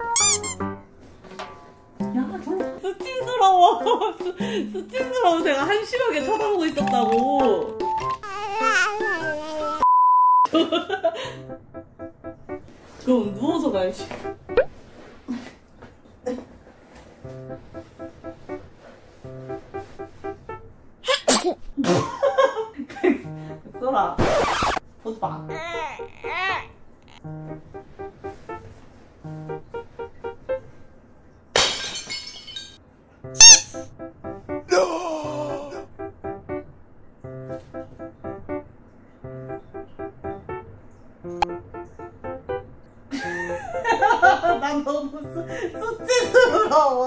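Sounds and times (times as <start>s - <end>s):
background music with plucked notes: 0.0s - 9.8s, 11.2s - 14.7s, 17.2s - 20.6s, 23.1s - 24.3s, 27.2s - 30.7s, 33.3s - 47.0s
high wavering squeak: 0.1s - 0.6s, 33.4s - 33.8s
woman laughing: 3.4s - 5.3s, 10.5s - 11.4s, 43.1s - 47.0s.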